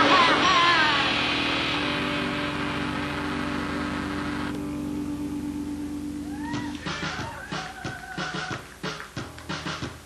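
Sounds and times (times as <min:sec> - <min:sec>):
electric guitar ringing drone: 0:00.0 - 0:06.9
amplifier hiss: 0:00.0 - 0:10.0.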